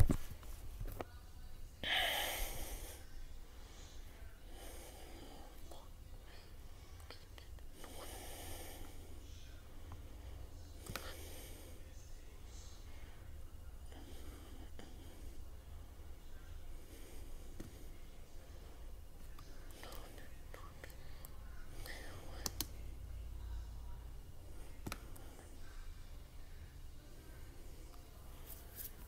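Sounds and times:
steady low hum: 0:00.0 - 0:29.0
person whispering faintly: 0:00.8 - 0:15.5, 0:16.2 - 0:29.0
faint breathing close to microphone: 0:01.8 - 0:29.0
soft clicks: 0:22.4 - 0:22.8, 0:24.8 - 0:25.2.

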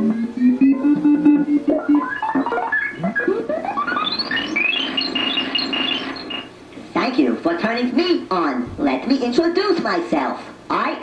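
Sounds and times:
synthesizer notes from small speaker: 0:00.0 - 0:06.5.

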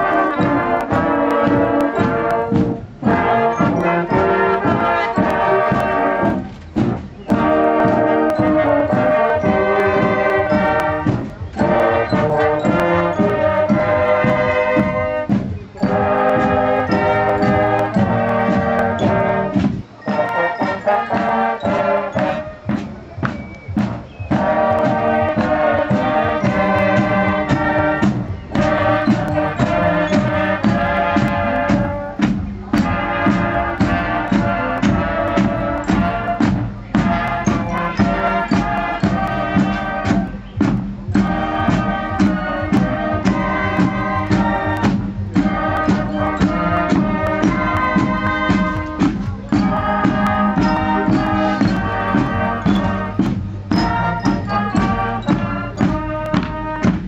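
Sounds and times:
drums striking: 0:00.0 - 0:57.0
marching band brass: 0:00.0 - 0:57.0.

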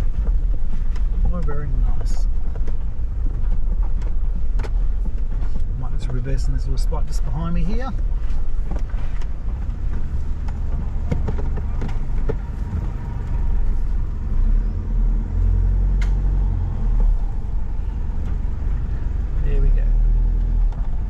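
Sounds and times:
car engine rumbling from inside: 0:00.0 - 0:21.0.

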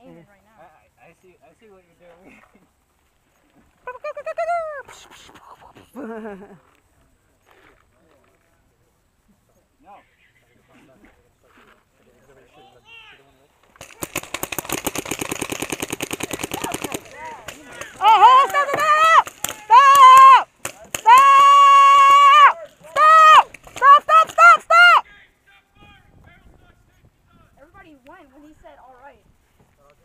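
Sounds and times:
paintball marker firing: 0:13.8 - 0:21.5
people yelling: 0:16.4 - 0:26.0
short shouts: 0:16.6 - 0:25.8.

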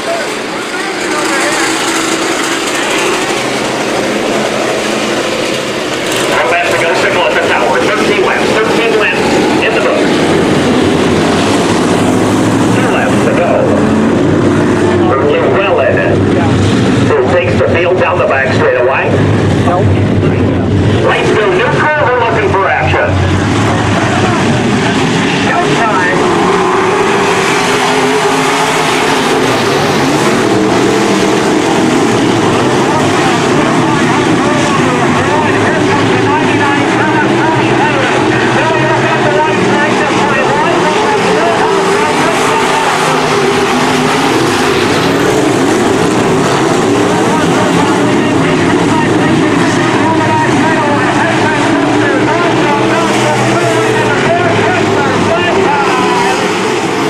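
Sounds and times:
race car engines: 0:00.0 - 0:57.0.

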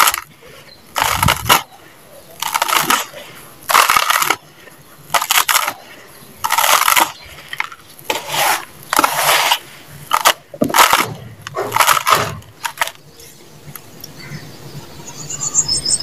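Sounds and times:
hands digging in dry sand: 0:00.9 - 0:04.5, 0:05.1 - 0:13.0.

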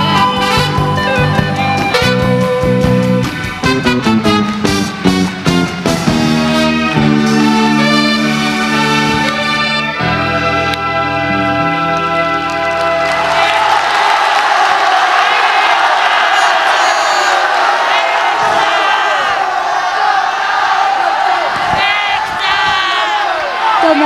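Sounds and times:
audience cheering and screaming: 0:12.1 - 0:24.0.

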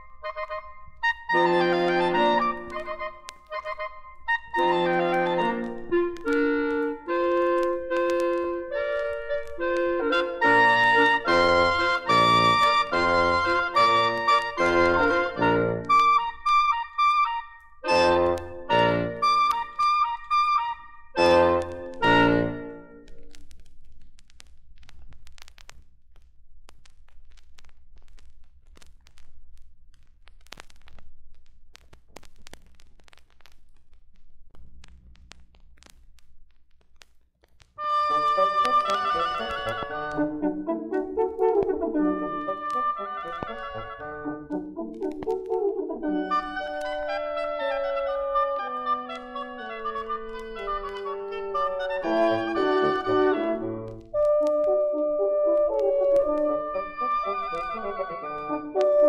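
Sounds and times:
record surface crackle: 0:00.0 - 0:59.0
wind ensemble chords: 0:37.9 - 0:48.7.

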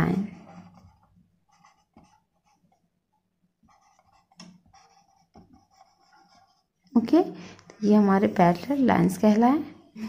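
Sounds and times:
marker pen scratching on whiteboard: 0:00.0 - 0:02.9, 0:03.6 - 0:07.2.

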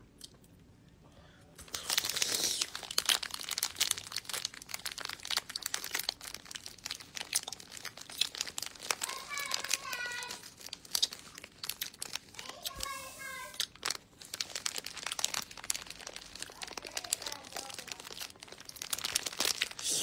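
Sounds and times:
plastic bag crinkling: 0:01.6 - 0:20.0.

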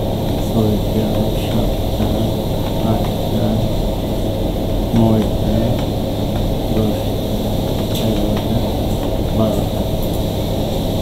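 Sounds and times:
fan or air conditioner hum: 0:00.0 - 0:11.0
murmur of a voice: 0:00.4 - 0:10.1.

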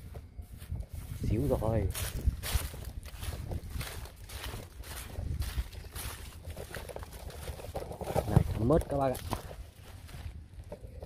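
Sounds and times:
footsteps through dry grass: 0:00.0 - 0:11.0
low microphone rumble: 0:00.0 - 0:11.0.

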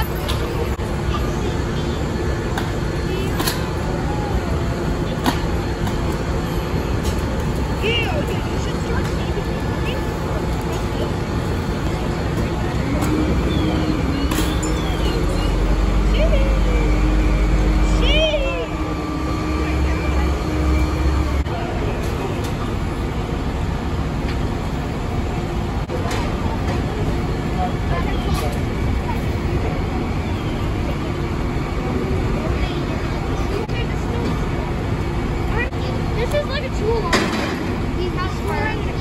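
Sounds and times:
diesel engine running: 0:00.0 - 0:39.0.

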